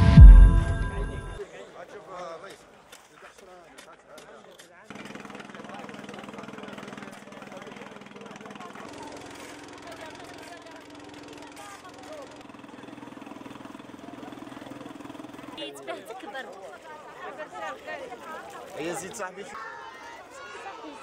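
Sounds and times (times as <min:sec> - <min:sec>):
people talking: 0:07.3 - 0:21.0.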